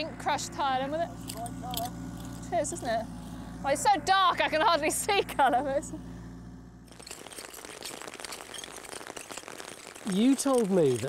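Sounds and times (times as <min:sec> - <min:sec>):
low hum: 0:00.0 - 0:11.0
rain pattering: 0:06.9 - 0:11.0.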